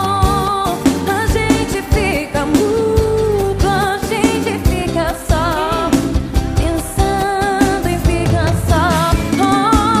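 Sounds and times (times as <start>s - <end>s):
person singing with vibrato: 0.0s - 10.0s
steady drum beat: 0.1s - 10.0s.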